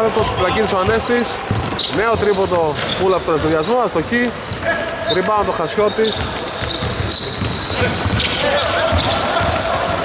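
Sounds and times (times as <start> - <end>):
basketball bouncing on hardwood: 6.2 - 9.7.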